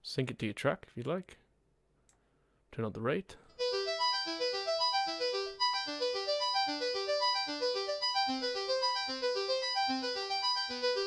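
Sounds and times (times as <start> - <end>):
synthesizer arpeggio: 3.6 - 11.0.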